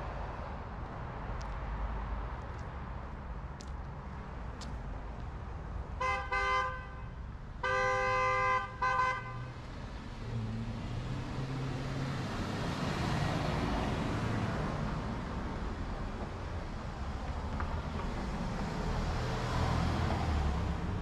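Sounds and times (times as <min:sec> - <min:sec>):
car horn honking: 0:06.0 - 0:09.5
vehicle passing: 0:10.2 - 0:15.7, 0:17.1 - 0:21.0.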